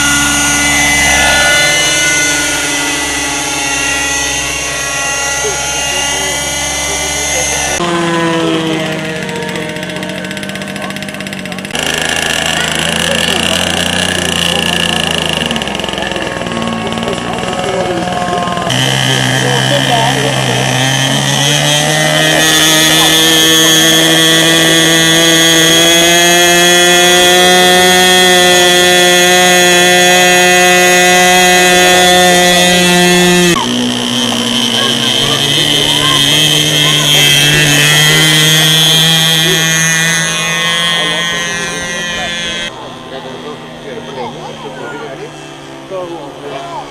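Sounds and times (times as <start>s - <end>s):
model airplane engine whine: 0.0s - 46.9s.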